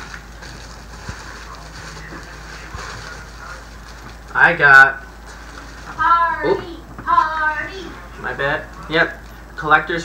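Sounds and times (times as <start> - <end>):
plastic bag crinkling: 0.0 - 6.0.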